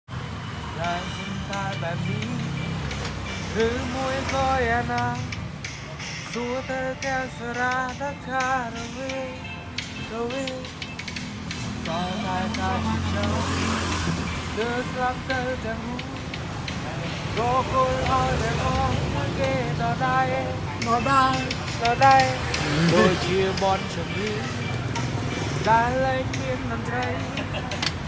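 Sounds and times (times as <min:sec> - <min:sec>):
young man singing: 0:00.7 - 0:05.6, 0:06.2 - 0:28.0
pop song vocals: 0:00.7 - 0:28.0.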